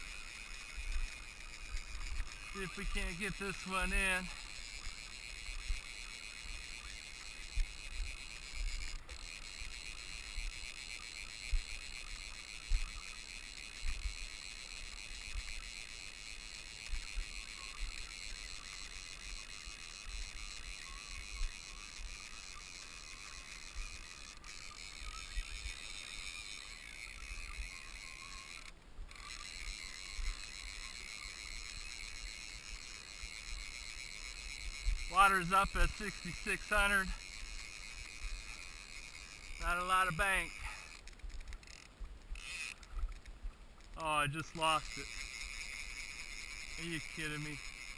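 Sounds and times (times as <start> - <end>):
faint high hiss: 0.0 - 47.9.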